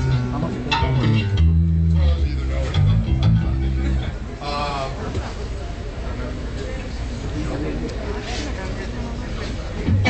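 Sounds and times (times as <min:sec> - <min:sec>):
electric guitar: 0:00.0 - 0:04.2
electric bass guitar notes: 0:00.0 - 0:04.5.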